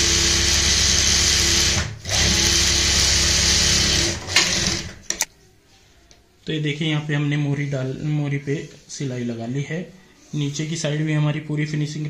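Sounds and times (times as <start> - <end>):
sewing machine running: 0.0 - 5.3.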